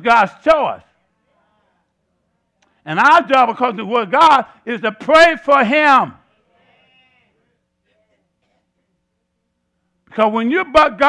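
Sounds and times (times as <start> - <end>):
man speaking: 0.0 - 0.9, 2.8 - 6.2, 10.1 - 11.0
faint steady hum: 0.0 - 11.0.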